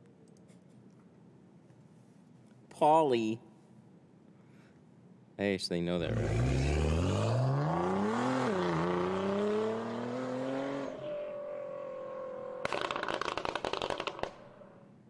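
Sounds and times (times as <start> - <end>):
rapid crackling rattle: 12.6 - 14.4.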